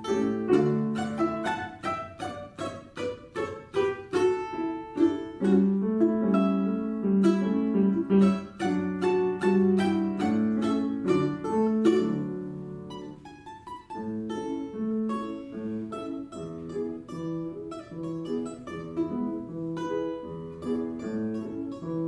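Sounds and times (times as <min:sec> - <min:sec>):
balalaika plucked notes: 0:00.0 - 0:22.0
piano accompaniment: 0:00.0 - 0:22.0.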